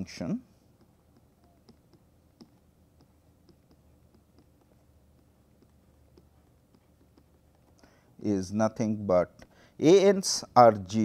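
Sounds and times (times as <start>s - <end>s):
stylus tapping on pen tablet: 0.6s - 8.0s.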